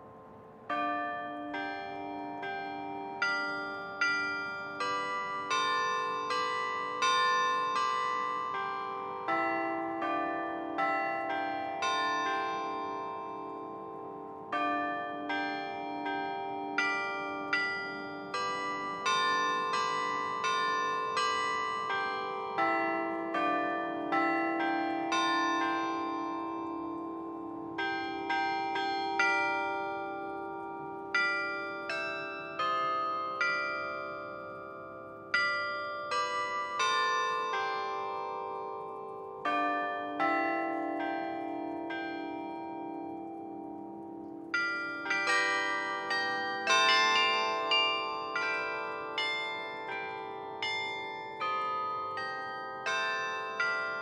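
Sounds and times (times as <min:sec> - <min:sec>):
carillon bells playing melody: 0:00.7 - 0:54.0.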